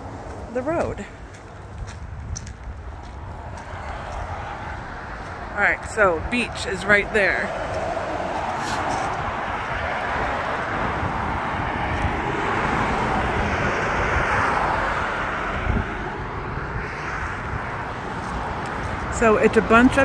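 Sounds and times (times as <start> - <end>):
road traffic passing: 0.0 - 20.0
car passing by: 3.0 - 20.0.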